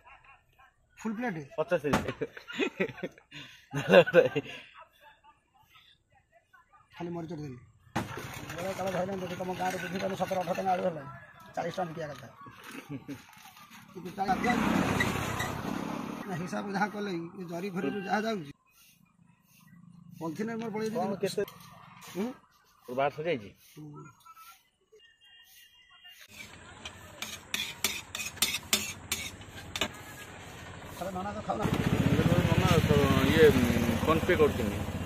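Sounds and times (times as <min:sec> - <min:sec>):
passing motor vehicle: 0:13.8 - 0:17.4, 0:28.9 - 0:35.0.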